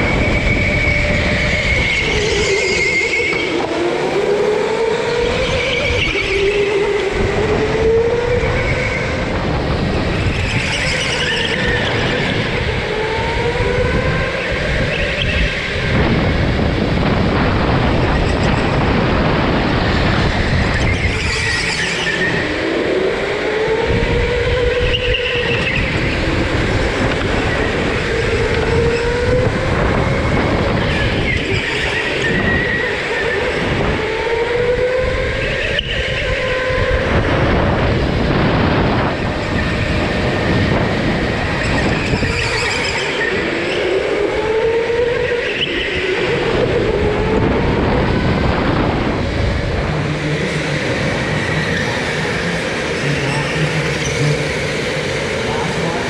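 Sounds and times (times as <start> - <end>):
go-kart motor whine: 0.0 - 56.0
kart rumbling over concrete: 0.0 - 56.0.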